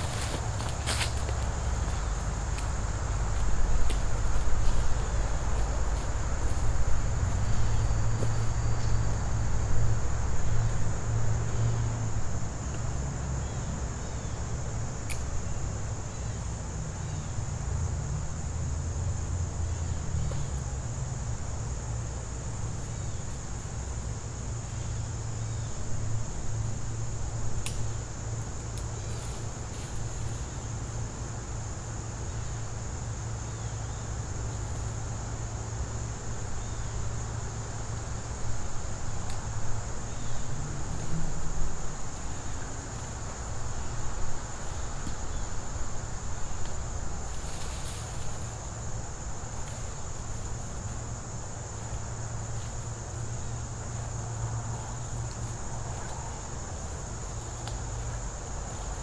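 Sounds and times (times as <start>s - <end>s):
high insect chorus: 0.0s - 59.0s.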